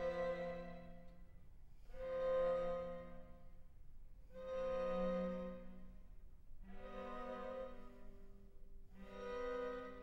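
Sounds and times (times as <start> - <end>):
string quartet holding chords: 6.6 - 10.0.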